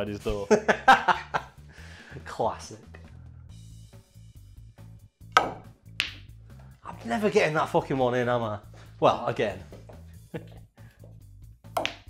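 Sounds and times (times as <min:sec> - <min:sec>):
ball hitting ball with ringing click: 0:05.4 - 0:06.2, 0:11.8 - 0:12.0
cue tip striking ball: 0:05.4 - 0:06.2, 0:11.8 - 0:12.0.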